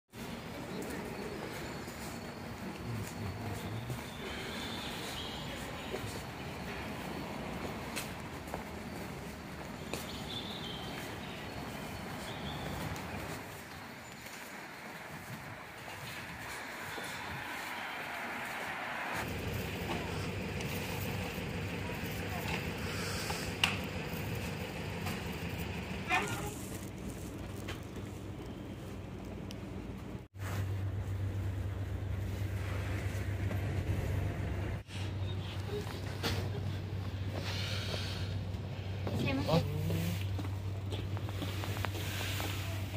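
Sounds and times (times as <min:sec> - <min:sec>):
traffic hum: 0:00.2 - 0:42.9
indistinct voices: 0:15.4 - 0:27.4
low hum: 0:18.7 - 0:34.8.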